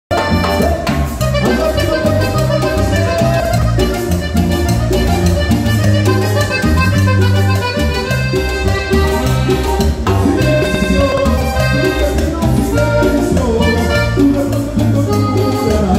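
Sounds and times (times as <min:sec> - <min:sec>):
bass line: 0:00.1 - 0:15.9
drums: 0:00.1 - 0:15.9
piano accordion melody: 0:00.1 - 0:15.9.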